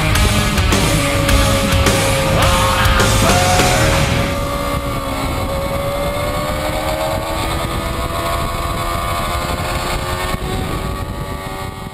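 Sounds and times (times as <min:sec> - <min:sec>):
rushing noise: 0:00.0 - 0:08.4
motorcycle engine running: 0:00.0 - 0:11.9.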